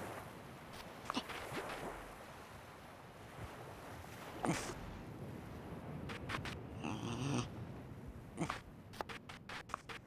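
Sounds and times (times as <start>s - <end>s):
animal-like vocal sound: 6.8s - 7.5s.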